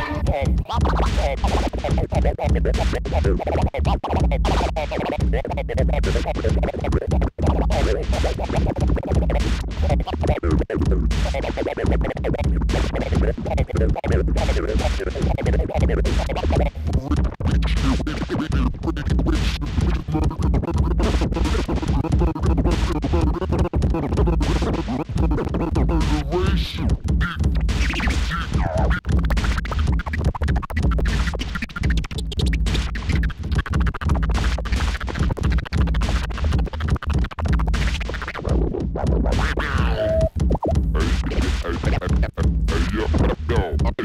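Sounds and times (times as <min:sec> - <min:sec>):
deep bass: 0:00.0 - 0:44.0
vinyl record scratching: 0:00.0 - 0:44.0.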